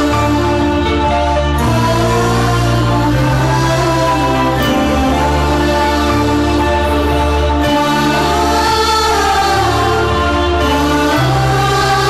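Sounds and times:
background score music: 0:00.0 - 0:12.0
wordless sung vocal melody: 0:00.0 - 0:12.0.

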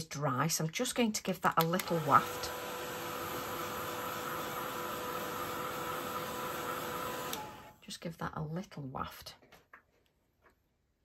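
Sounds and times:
heat tool fan whirring: 0:01.6 - 0:07.8.

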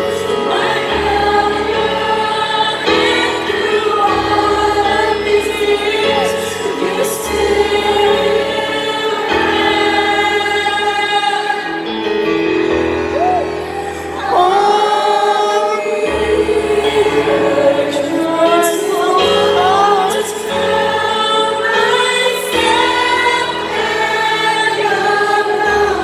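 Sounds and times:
piano chords: 0:00.0 - 0:26.0
woman singing into microphone: 0:13.2 - 0:26.0.

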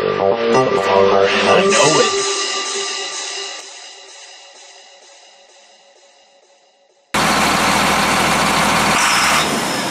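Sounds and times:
tractor diesel engine running: 0:07.2 - 0:09.9.

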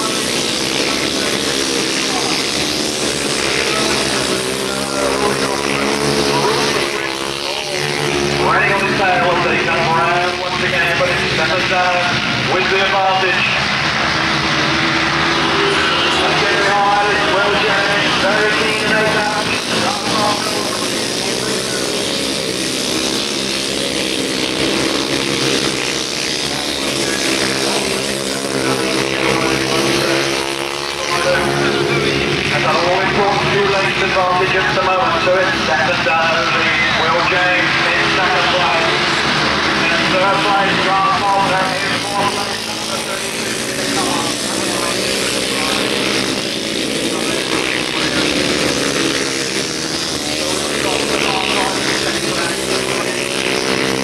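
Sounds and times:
racing motorcycle engines: 0:00.0 - 0:54.0
public address voice: 0:08.3 - 0:14.1, 0:15.6 - 0:21.4, 0:31.0 - 0:44.3.

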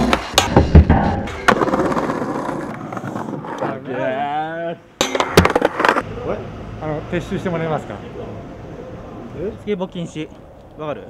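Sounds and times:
skateboard wheels rolling: 0:00.0 - 0:03.9, 0:05.2 - 0:06.0
skateboard clacking on ground: 0:05.0 - 0:06.0.

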